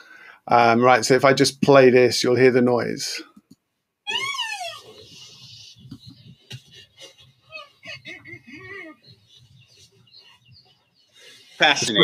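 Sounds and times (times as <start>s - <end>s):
young rhinos squeaking: 4.0s - 12.0s.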